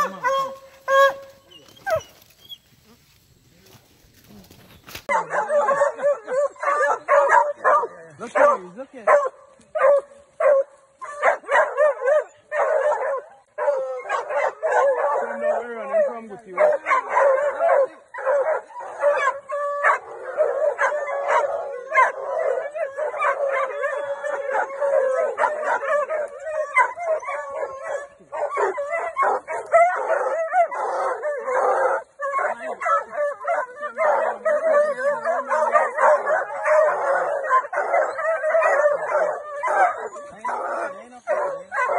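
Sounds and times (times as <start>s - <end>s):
dogs barking and howling: 0.0s - 3.0s, 5.0s - 41.9s.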